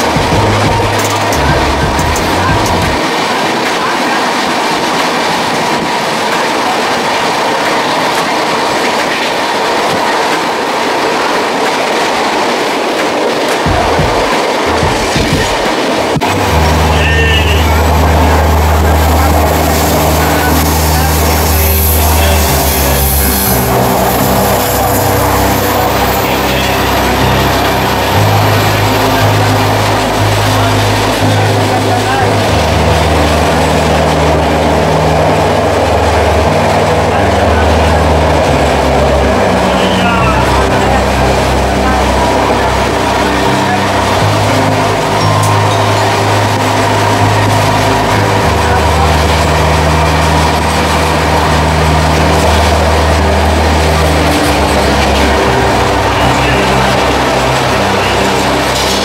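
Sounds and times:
train wheels on rails: 0:00.0 - 0:59.0.

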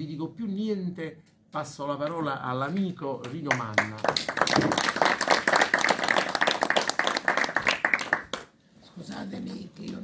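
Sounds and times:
people applauding: 0:03.5 - 0:08.5.

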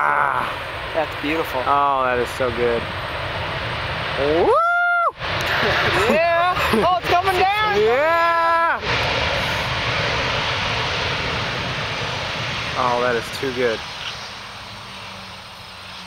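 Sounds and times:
jet engines running: 0:00.0 - 0:16.0
spectators whooping and cheering: 0:04.2 - 0:05.2.

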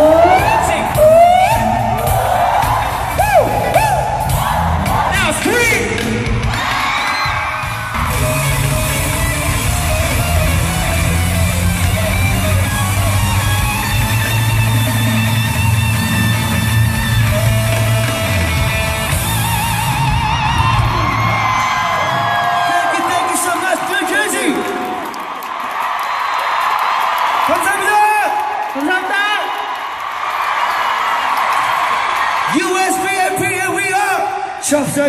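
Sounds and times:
fans yelling: 0:00.0 - 0:35.0
live concert music: 0:00.0 - 0:35.0
electric guitar: 0:07.6 - 0:21.5.

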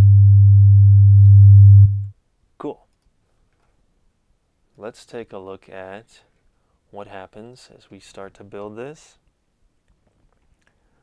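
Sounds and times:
steady pure sine tone: 0:00.0 - 0:02.1
click: 0:02.9 - 0:03.6.

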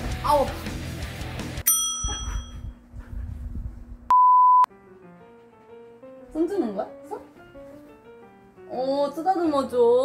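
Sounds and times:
light background music: 0:04.7 - 0:10.0.

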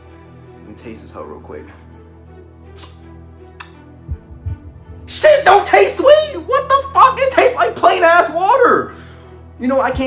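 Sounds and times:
quiet background music: 0:00.0 - 0:10.0
short sharp clicks: 0:02.7 - 0:03.8.

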